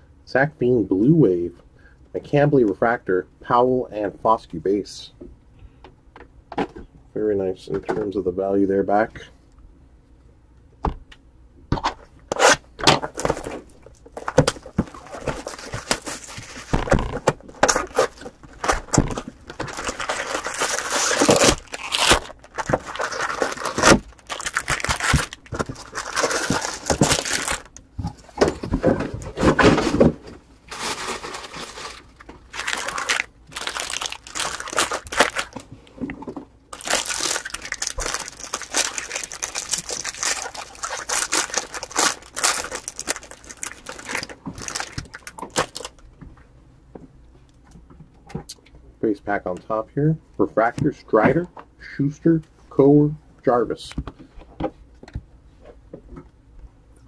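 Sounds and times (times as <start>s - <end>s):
plastic wrapping tearing and crumpling: 12.3s - 27.8s, 30.7s - 35.7s, 36.7s - 46.0s
foil wrappers crinkling and tearing: 12.4s - 27.8s, 30.7s - 35.7s, 36.7s - 46.0s.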